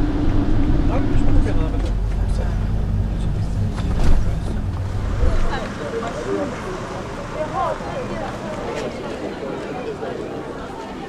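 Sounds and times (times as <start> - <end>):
engine and road rumble: 0.0 - 11.0
faint voices: 0.9 - 11.0.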